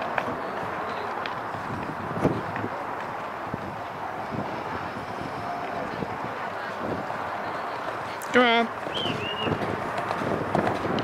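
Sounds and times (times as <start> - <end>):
outdoor background noise: 0.0 - 11.0
horse hooves thudding on sand: 8.7 - 11.0.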